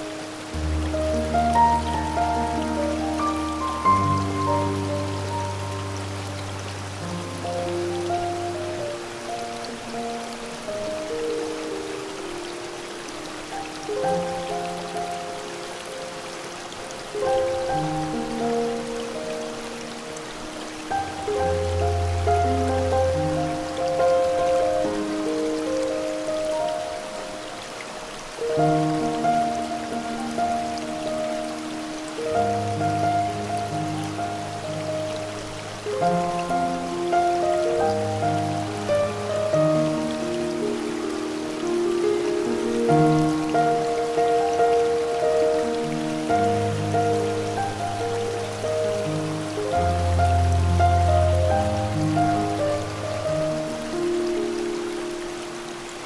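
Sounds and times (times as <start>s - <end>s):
slow calm piano music: 0.0s - 56.0s
waterfall hiss: 0.0s - 56.0s.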